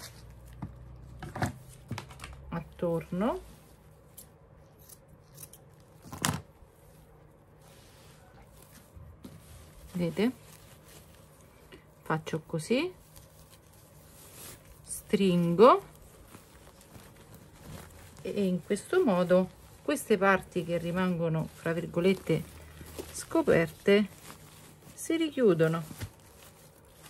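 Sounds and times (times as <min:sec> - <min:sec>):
burlap being gathered and pulled: 0:00.0 - 0:04.2, 0:06.1 - 0:27.0
scissors snipping: 0:04.2 - 0:05.7.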